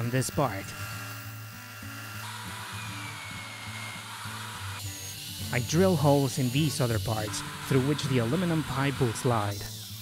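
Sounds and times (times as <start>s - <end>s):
belt sander motor hum: 0.0s - 10.0s.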